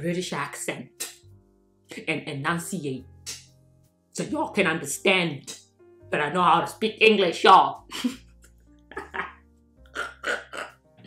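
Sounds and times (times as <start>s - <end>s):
soft background music: 0.0s - 11.0s
woman laughing: 7.9s - 9.4s.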